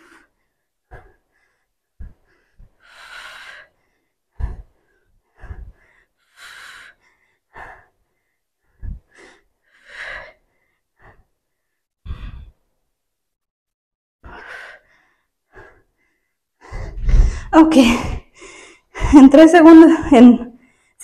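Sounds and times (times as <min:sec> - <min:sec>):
woman breathing heavily: 0:00.0 - 0:12.8, 0:14.2 - 0:21.0
breath thumping microphone: 0:16.6 - 0:19.3.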